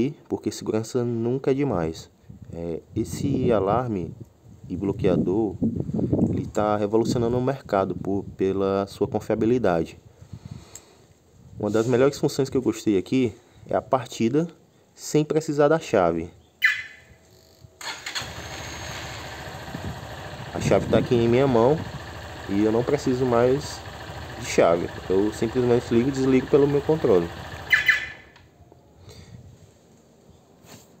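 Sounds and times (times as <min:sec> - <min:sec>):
soft rustle: 0:10.6 - 0:12.2, 0:29.5 - 0:31.0
electric starter cranking: 0:17.8 - 0:28.4
motorcycle engine idling: 0:18.2 - 0:28.4.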